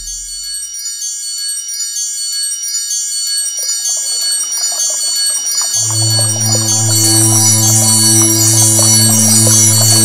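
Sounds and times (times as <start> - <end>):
deep steady bass tone: 0.0 - 0.6
shimmering wind chime tones: 3.0 - 10.0.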